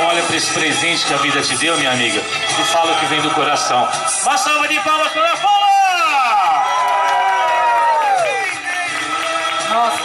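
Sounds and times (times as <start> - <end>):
announcer's long amplified call: 0.0 - 6.7
crowd cheering: 5.4 - 10.0.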